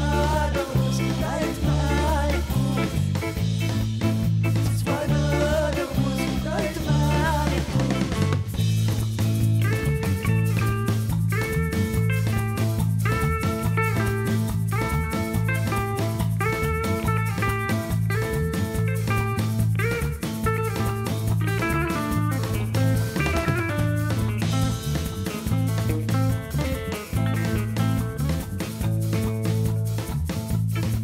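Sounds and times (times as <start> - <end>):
electric guitar phrases: 0.0 - 29.8
bass guitar line: 0.0 - 31.0
drum kit: 0.0 - 31.0.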